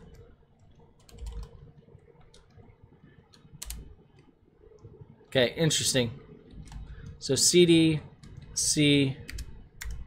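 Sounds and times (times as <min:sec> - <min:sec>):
computer keyboard keystrokes: 0:00.0 - 0:01.6, 0:03.3 - 0:04.3, 0:06.5 - 0:07.2, 0:09.2 - 0:10.0.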